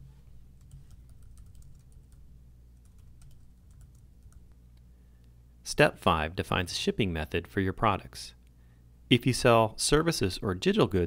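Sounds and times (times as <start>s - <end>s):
keyboard typing: 0.6s - 2.2s, 2.8s - 4.6s.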